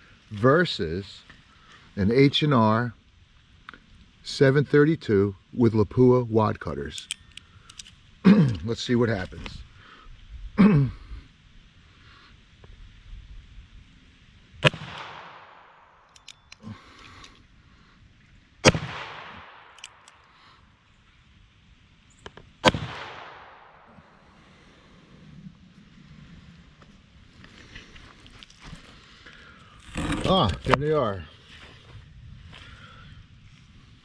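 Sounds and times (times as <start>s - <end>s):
revolver shots with echo: 18.6s - 19.7s.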